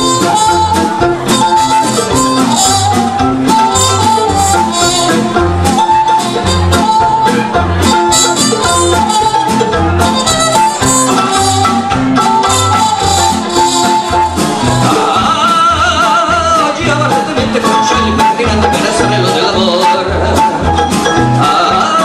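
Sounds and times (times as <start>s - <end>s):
cello bass: 0.0s - 22.0s
mandolin: 0.0s - 22.0s
strummed classical guitar: 0.0s - 22.0s
trumpet melody: 0.0s - 22.0s.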